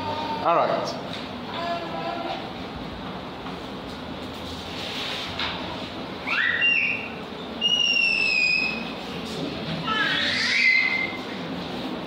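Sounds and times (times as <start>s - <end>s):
high whistles: 6.2s - 9.0s.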